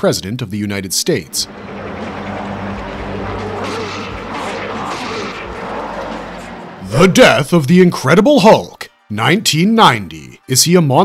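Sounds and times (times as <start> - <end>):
road noise: 1.0 - 7.5
truck engine running: 1.3 - 7.1.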